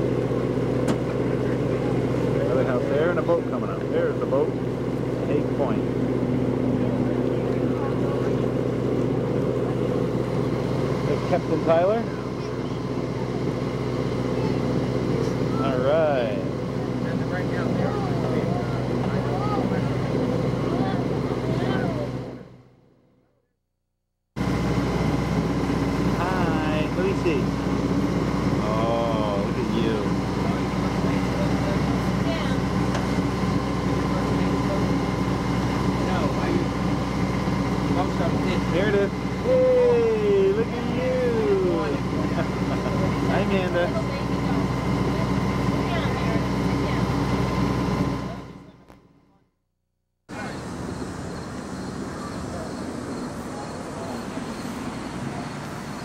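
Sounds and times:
boat engine droning: 0.0s - 23.2s, 24.4s - 49.5s, 50.3s - 56.0s
people talking: 1.3s - 4.6s, 5.2s - 5.9s, 6.7s - 8.7s, 11.1s - 22.5s, 26.1s - 27.6s, 28.6s - 35.1s, 35.8s - 37.1s, 37.8s - 47.2s, 48.0s - 48.9s, 50.3s - 50.8s, 51.9s - 56.0s.

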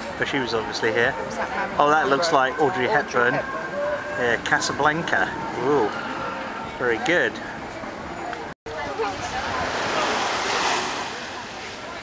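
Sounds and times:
small waves on sandy beach: 8.8s - 12.0s.

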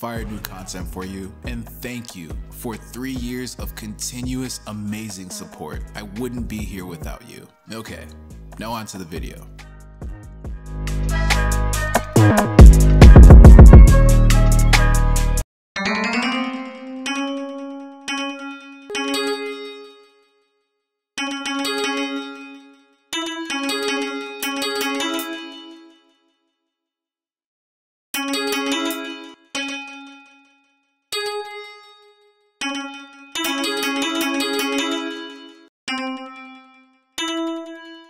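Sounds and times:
synthesized melody notes: 10.7s - 20.2s, 32.6s - 38.0s
bell-like synthesizer notes: 15.8s - 20.3s, 21.2s - 26.2s, 28.2s - 30.5s, 31.2s - 38.0s.

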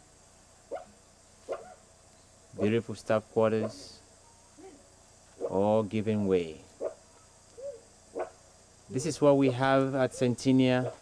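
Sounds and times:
dog barking: 0.7s - 0.9s, 1.5s - 1.8s, 6.8s - 7.0s, 7.6s - 8.4s, 9.4s - 11.0s.

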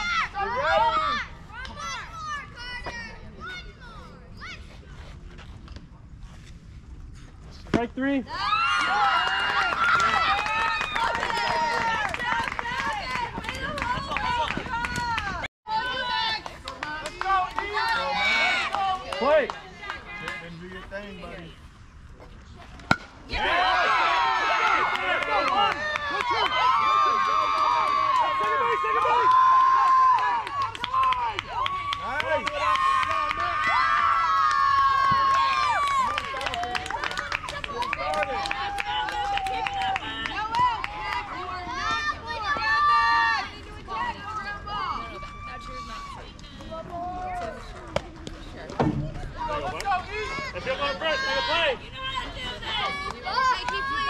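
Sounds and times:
crowd shouting and chanting: 22.9s - 36.0s, 38.0s - 47.9s, 48.8s - 54.0s.

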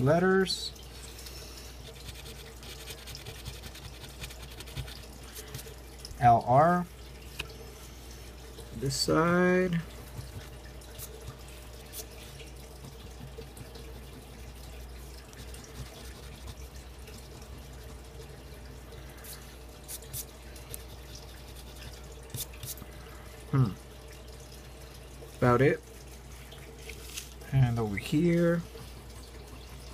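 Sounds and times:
low steady hum: 0.0s - 29.9s
coin scratching lottery ticket: 2.1s - 5.0s.

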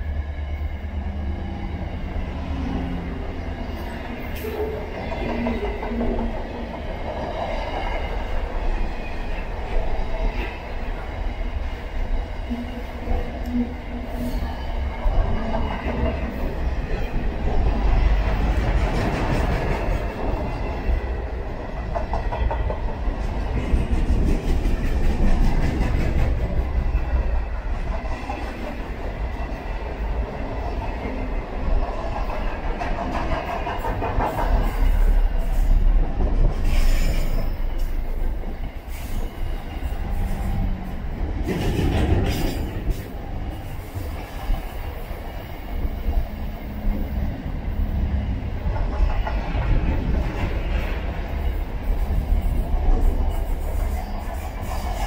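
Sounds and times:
freight train wheels rumbling: 0.0s - 55.0s
clacking over rail joints: 4.0s - 8.1s, 31.8s - 38.3s, 40.1s - 44.7s.

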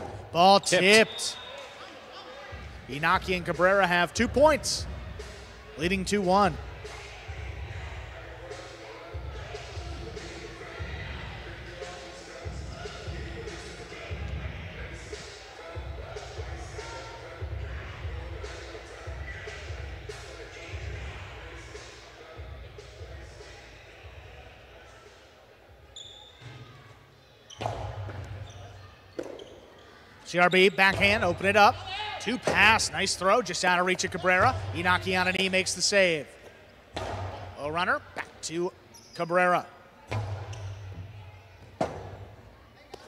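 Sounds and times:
echoing background chatter: 0.0s - 43.0s.

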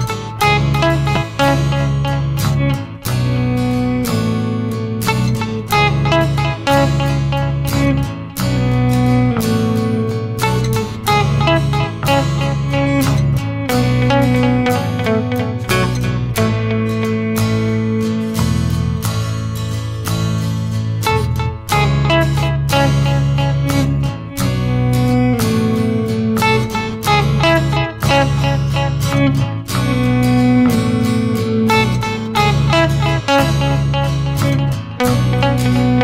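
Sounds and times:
electric guitar playing: 0.0s - 36.0s
sustained low bass notes: 0.0s - 36.0s.

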